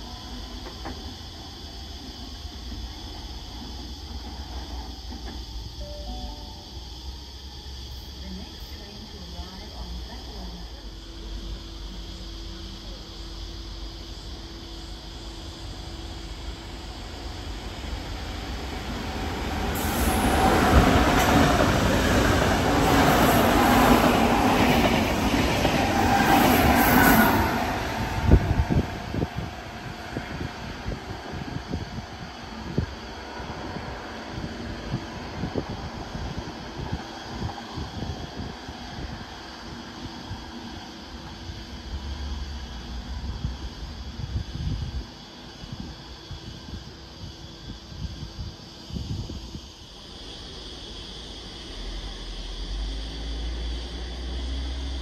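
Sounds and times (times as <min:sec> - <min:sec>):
high squeal of train: 0:00.0 - 0:10.5, 0:11.1 - 0:55.0
electric train rumble: 0:00.0 - 0:55.0.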